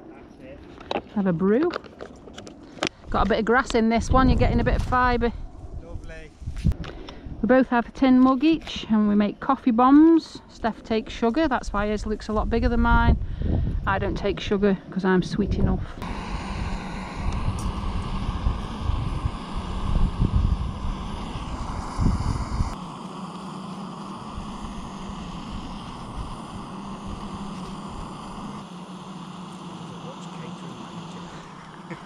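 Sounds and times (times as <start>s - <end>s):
camping stove hissing: 2.5s - 5.3s, 9.4s - 14.6s, 15.4s - 32.0s
wind buffeting microphone: 3.0s - 9.4s, 10.1s - 23.0s, 23.9s - 28.7s.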